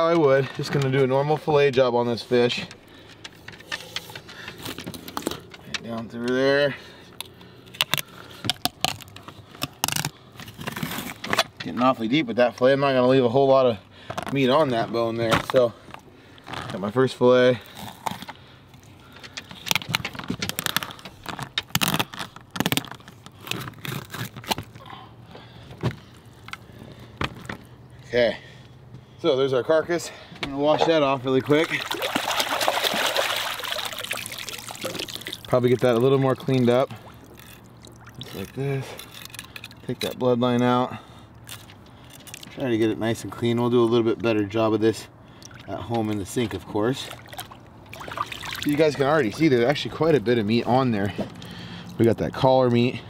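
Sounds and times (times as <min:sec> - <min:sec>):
water splashing and trickling: 0:30.7 - 0:40.8, 0:45.2 - 0:53.0
water dripping: 0:31.3 - 0:38.3, 0:45.3 - 0:46.2, 0:47.1 - 0:48.8.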